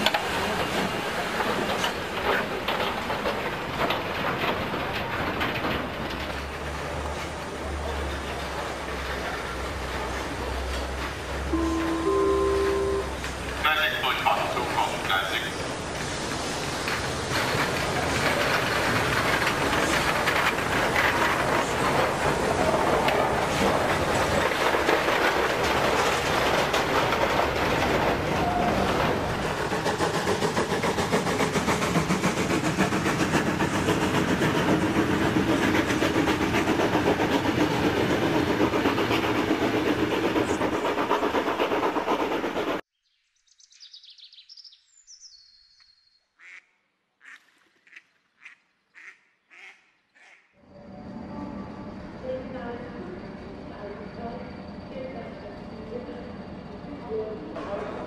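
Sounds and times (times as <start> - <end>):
train wheels clattering over rail joints: 0.0 - 11.5, 15.9 - 42.8.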